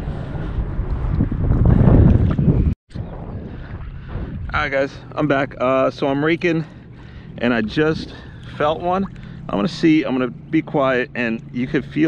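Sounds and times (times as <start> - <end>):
water noise: 0.0 - 12.0
wind buffeting microphone: 0.0 - 12.0.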